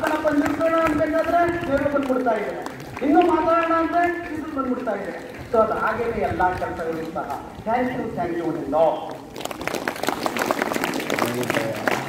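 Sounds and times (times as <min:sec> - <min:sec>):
audience applause: 0:00.0 - 0:07.1, 0:09.3 - 0:12.0.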